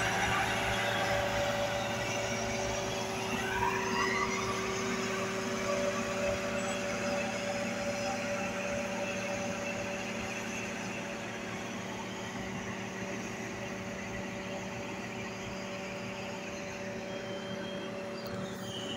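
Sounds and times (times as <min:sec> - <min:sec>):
diesel road roller engine running: 0:00.0 - 0:18.9
short rising whine: 0:00.0 - 0:18.9.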